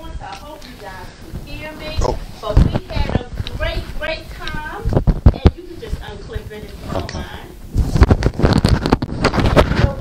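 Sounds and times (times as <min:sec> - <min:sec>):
dense crackles: 0:00.0 - 0:10.0.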